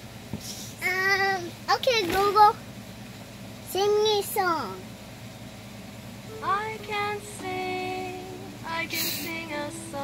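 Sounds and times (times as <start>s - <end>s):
synthesized female voice singing: 6.3s - 10.0s.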